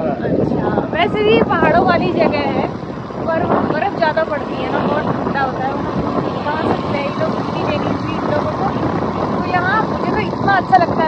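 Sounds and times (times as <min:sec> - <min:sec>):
road noise: 0:00.0 - 0:11.0
wind rushing across microphone: 0:00.0 - 0:11.0
motorbike engine running: 0:00.8 - 0:11.0.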